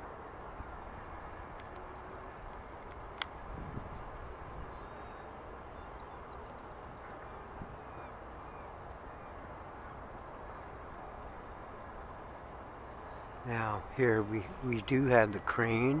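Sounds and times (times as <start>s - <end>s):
outdoor background hiss: 0.0s - 16.0s
faint high bird calls: 4.5s - 11.5s.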